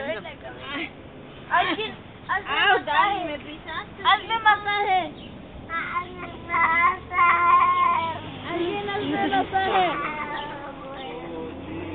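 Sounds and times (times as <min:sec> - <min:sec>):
soft voices: 0:01.6 - 0:11.9.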